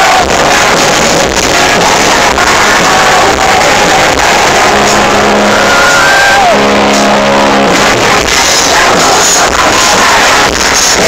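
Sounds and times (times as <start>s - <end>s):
loud live concert music: 0.0s - 11.0s.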